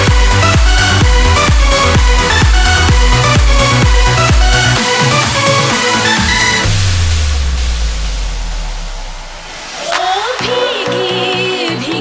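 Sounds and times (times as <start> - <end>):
deep bass tone: 0.0 - 9.8.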